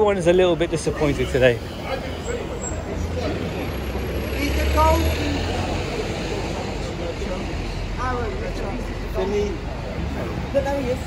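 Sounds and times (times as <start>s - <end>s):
bystanders' voices: 0.0s - 11.0s
traffic engine rumble: 0.0s - 11.0s.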